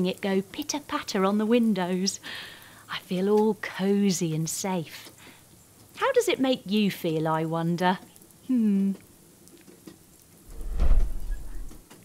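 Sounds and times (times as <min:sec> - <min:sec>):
soft rain shower: 0:00.0 - 0:12.0
deep rushing whoosh: 0:10.5 - 0:11.8.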